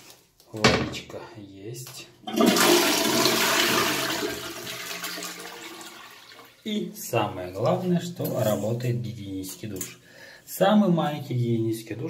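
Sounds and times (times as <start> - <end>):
toilet flushing: 2.2 - 6.6.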